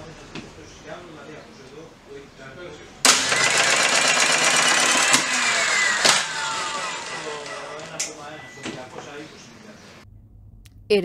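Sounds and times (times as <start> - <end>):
circuit breaker motor running: 3.0 - 9.7
falling whine of motor spinning down: 3.1 - 9.5.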